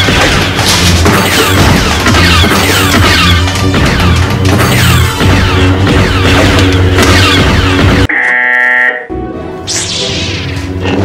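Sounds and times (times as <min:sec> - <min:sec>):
harsh buzzer: 0:07.9 - 0:09.1.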